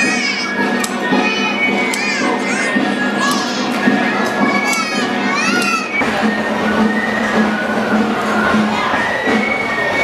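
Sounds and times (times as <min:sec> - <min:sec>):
children shouting: 0:00.0 - 0:10.0
crowd noise: 0:00.0 - 0:10.0.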